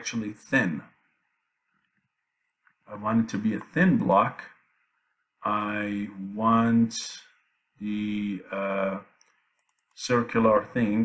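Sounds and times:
man speaking: 0.0s - 1.1s, 2.8s - 4.7s, 5.4s - 9.2s, 10.0s - 11.0s
faint clicks: 9.2s - 10.0s.

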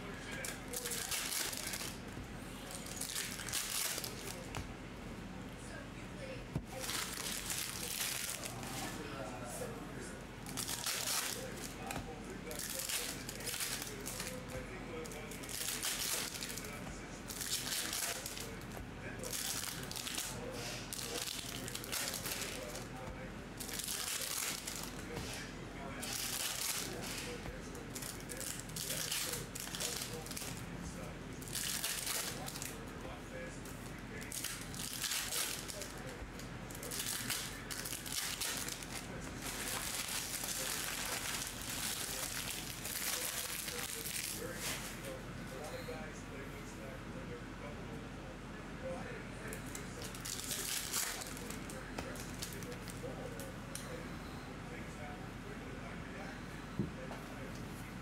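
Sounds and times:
foil card packs crinkling and tearing: 0.3s - 2.0s, 2.8s - 4.6s, 6.7s - 8.9s, 10.4s - 23.0s, 23.6s - 25.2s, 26.0s - 30.6s, 31.4s - 32.8s, 34.2s - 45.0s, 49.7s - 53.0s.

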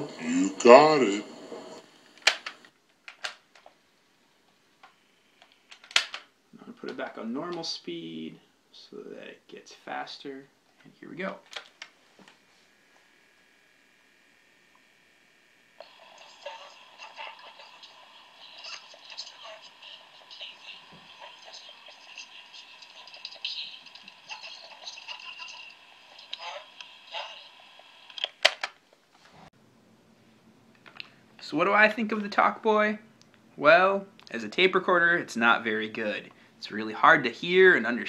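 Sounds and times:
faint tape hiss: 0.0s - 38.0s.

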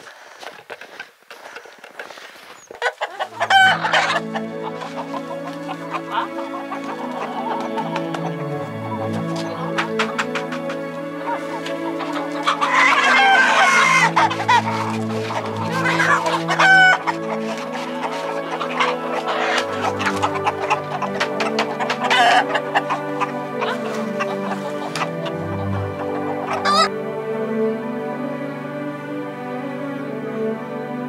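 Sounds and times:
chickens clucking: 0.0s - 27.3s
background music sustained tones: 3.0s - 31.0s.

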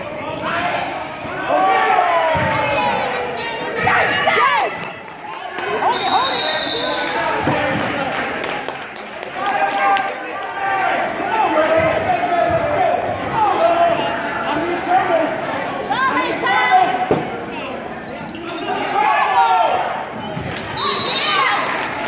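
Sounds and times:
people shouting in a gym: 0.0s - 4.9s, 9.5s - 17.8s, 18.4s - 21.8s.

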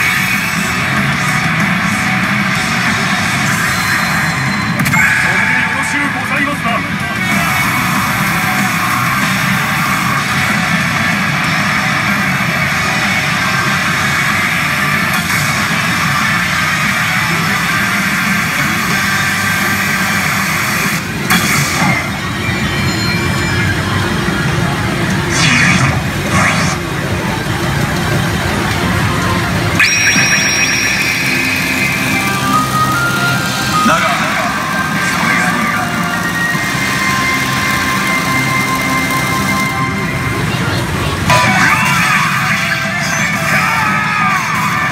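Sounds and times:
electronic effect sounds: 0.0s - 44.9s
pachinko machine music: 0.0s - 44.9s
electronic chimes: 21.8s - 24.5s, 29.8s - 40.5s
held high electronic tone: 29.8s - 40.6s.

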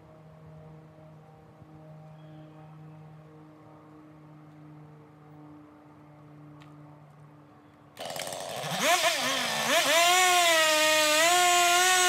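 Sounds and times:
chainsaw running: 8.0s - 12.0s.

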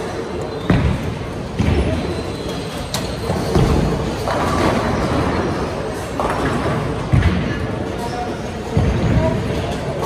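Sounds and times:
bowling alley din with voices: 0.0s - 10.0s
bowling balls thudding on lanes: 3.2s - 7.7s.

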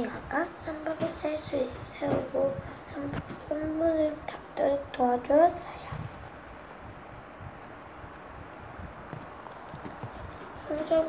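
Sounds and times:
boy reading aloud: 0.0s - 6.1s, 10.5s - 11.0s
room noise: 0.0s - 11.0s.

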